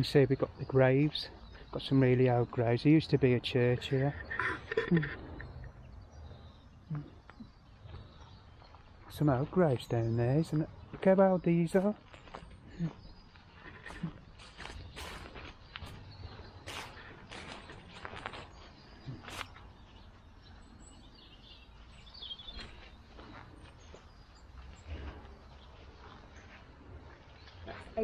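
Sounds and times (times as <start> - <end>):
footsteps on overgrown ground: 5.0 - 28.0.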